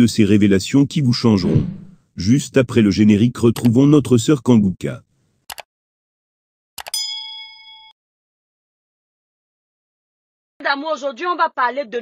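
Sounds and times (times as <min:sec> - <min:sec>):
bell-like ding: 0:06.9 - 0:08.0.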